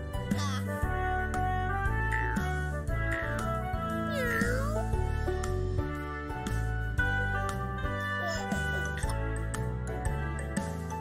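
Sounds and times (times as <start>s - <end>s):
background music: 0.0s - 11.0s
cartoon cat meow: 4.1s - 4.9s.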